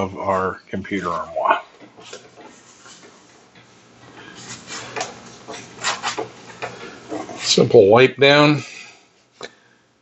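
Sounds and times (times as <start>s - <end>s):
paper towel swishing on whiteboard: 4.4s - 6.3s.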